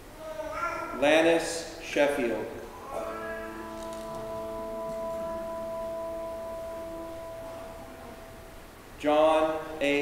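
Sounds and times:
church organ holding a note: 2.7 - 10.0.

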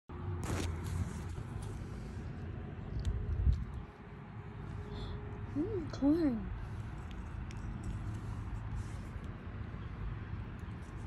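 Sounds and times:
steady low rumble: 0.1 - 11.0.

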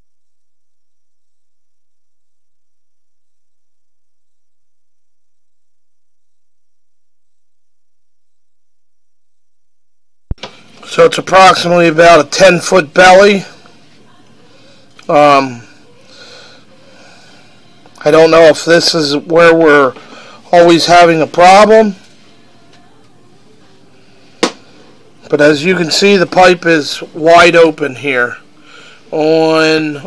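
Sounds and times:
faint background noise: 10.3 - 30.0
man speaking: 10.8 - 13.6, 15.1 - 15.7, 18.0 - 22.0, 25.3 - 28.4, 29.1 - 30.0.

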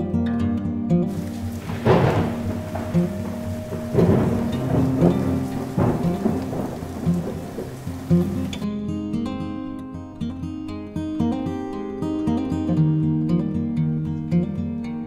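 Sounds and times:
acoustic guitar music: 0.0 - 15.0
heavy rain pouring: 1.1 - 8.6.

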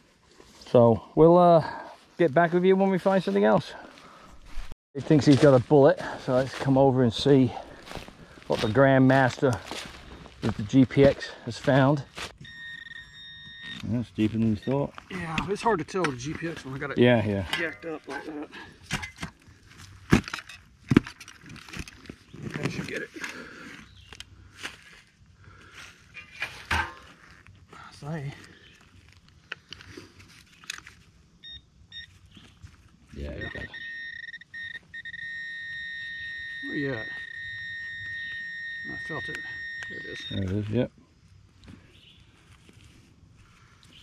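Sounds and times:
metal detector high tone: 11.0 - 15.8, 31.4 - 32.4, 33.1 - 40.8.

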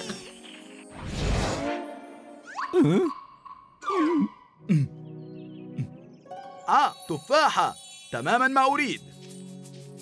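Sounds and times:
soft background music: 0.0 - 10.0
man sighing and murmuring: 2.8 - 3.2, 4.0 - 5.0.

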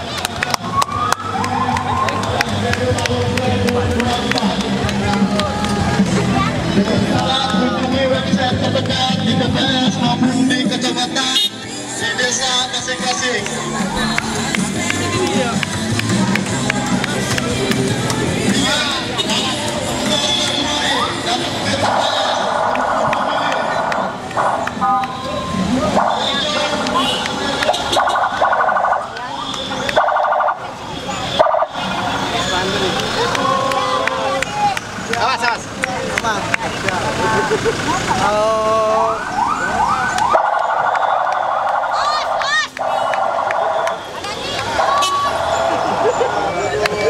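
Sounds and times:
people talking: 0.0 - 40.5, 41.8 - 47.0
car engines passing: 0.0 - 47.0
crowd chatter: 0.0 - 47.0.

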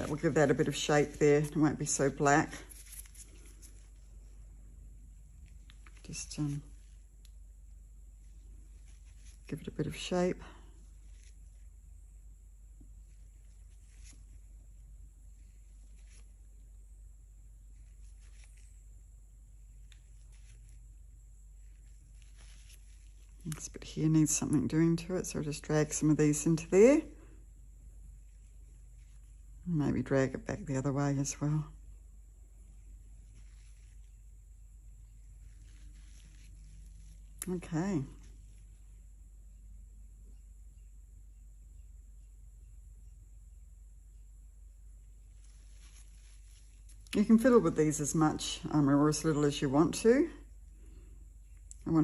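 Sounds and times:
faint handling rustles: 0.0 - 12.1, 12.9 - 16.6, 17.4 - 29.8, 32.6 - 39.4, 45.0 - 49.4
faint scratchy noises: 0.0 - 42.3, 44.1 - 52.0
steady low hum: 0.0 - 52.0.

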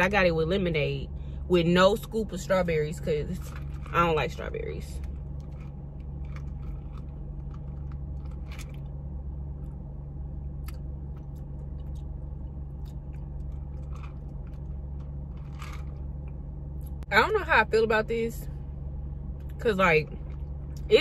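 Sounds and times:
car cabin hum: 0.0 - 21.0.

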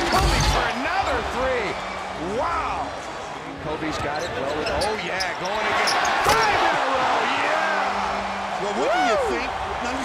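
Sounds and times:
arena noise: 0.0 - 10.0
sneakers squeaking on floor: 3.9 - 6.4.

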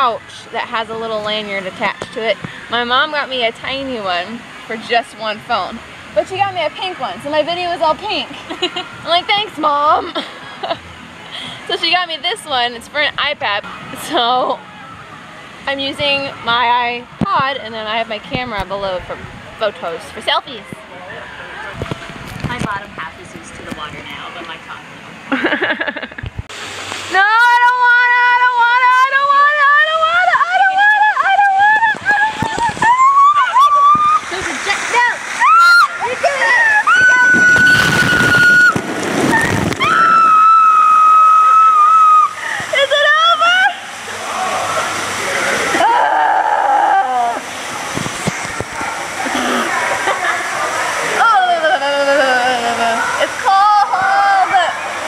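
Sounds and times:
waterfall splashing: 21.4 - 55.0
woman shrieking: 31.6 - 34.2, 45.8 - 47.4.

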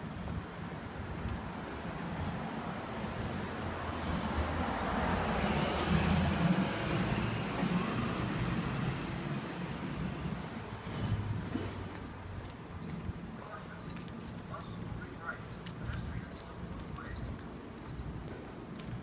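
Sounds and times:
vehicle passing: 2.8 - 12.0.

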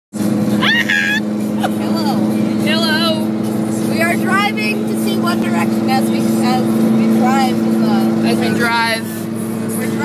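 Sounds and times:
car engine drone: 0.1 - 10.0
road noise: 0.1 - 10.0
woman's excited voice and laughter: 0.6 - 2.1.

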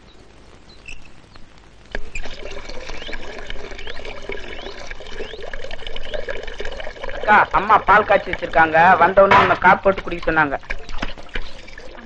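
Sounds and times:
water pouring into bucket: 1.9 - 12.0.

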